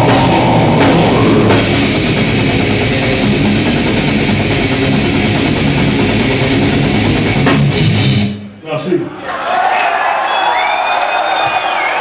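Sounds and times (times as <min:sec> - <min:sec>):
death metal band playing live: 0:00.0 - 0:08.4
distorted guitars: 0:00.0 - 0:08.4.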